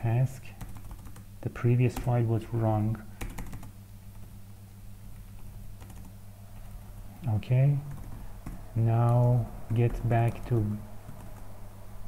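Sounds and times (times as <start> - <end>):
steady low hum: 0.0 - 12.0
computer keyboard keystrokes: 0.6 - 1.2, 3.2 - 4.3, 5.2 - 6.1, 7.9 - 10.5.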